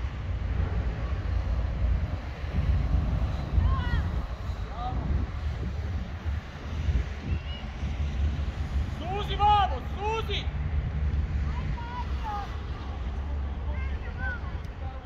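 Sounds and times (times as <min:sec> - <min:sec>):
wind buffeting microphone: 0:00.0 - 0:15.0
people shouting: 0:03.6 - 0:04.2, 0:11.5 - 0:14.5.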